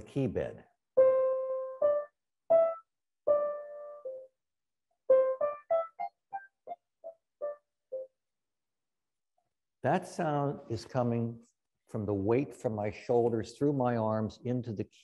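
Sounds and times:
grand piano melody: 1.0s - 4.3s, 5.1s - 8.1s.

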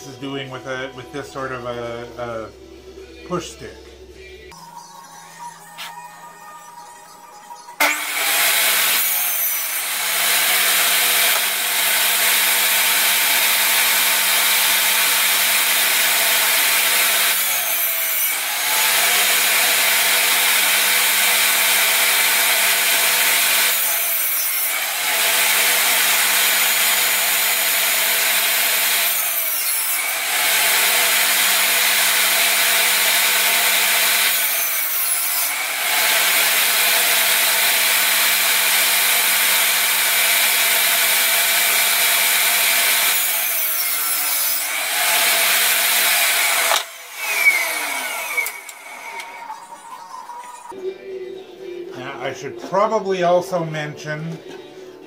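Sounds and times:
table saw cutting wood: 7.8s - 49.8s.

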